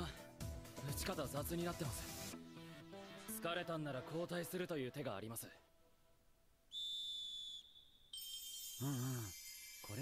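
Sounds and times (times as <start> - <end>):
high whistle-like tone: 6.7 - 10.0.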